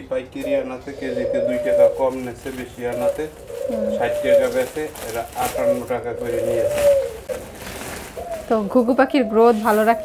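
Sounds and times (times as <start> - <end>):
doves cooing: 0.0 - 10.0.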